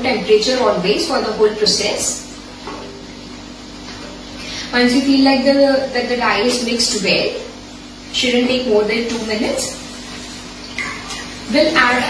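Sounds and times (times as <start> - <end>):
steady low hum: 0.0 - 12.0.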